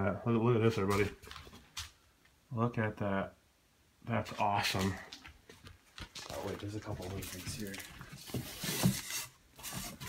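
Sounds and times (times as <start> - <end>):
hands rustling papers and insulation: 4.4 - 10.0.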